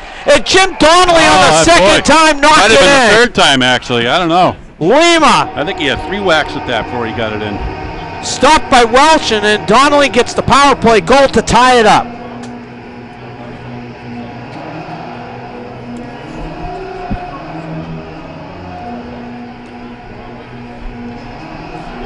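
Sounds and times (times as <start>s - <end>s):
steady low hum: 4.5s - 22.0s.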